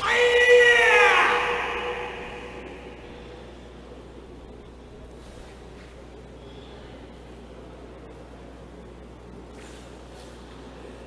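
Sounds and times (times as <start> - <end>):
person shouting: 0.0 - 3.0
hall echo: 0.0 - 4.7.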